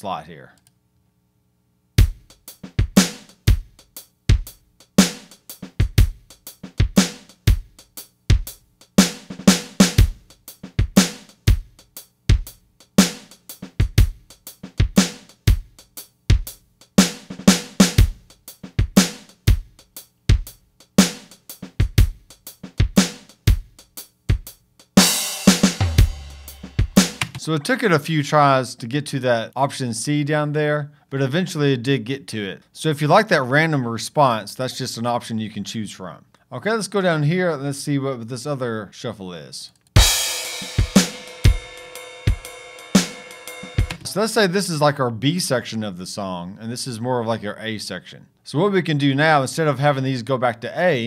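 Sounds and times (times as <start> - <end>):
drum kit shuffle groove: 2.0 - 28.5, 40.0 - 44.9
cymbal crash ringing: 40.0 - 44.0.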